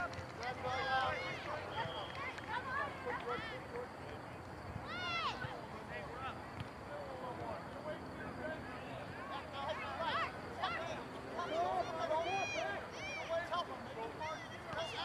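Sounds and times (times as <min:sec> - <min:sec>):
distant voices chattering: 0:00.0 - 0:15.0.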